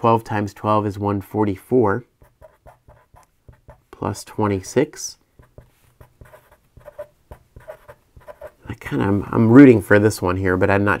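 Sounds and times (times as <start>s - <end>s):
marker writing on paper: 2.2s - 3.9s, 5.4s - 8.6s.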